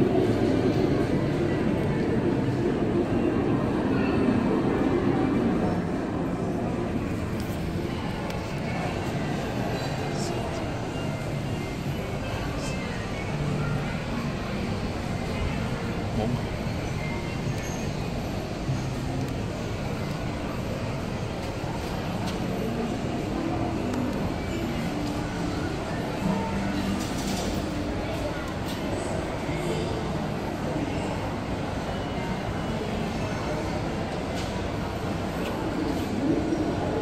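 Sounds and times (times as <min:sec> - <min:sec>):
faint indistinct voices: 0:00.0 - 0:37.0.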